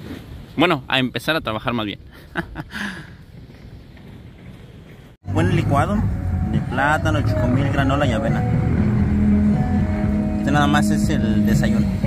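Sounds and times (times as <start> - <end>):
low outdoor rumble: 1.4 - 12.0.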